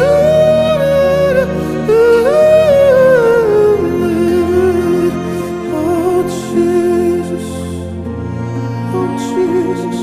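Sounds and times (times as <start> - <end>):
hummed melody: 0.0 - 10.0.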